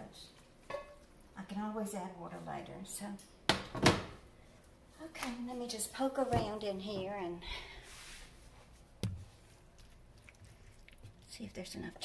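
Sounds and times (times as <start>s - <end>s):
wooden spoon stirring: 8.5s - 12.0s.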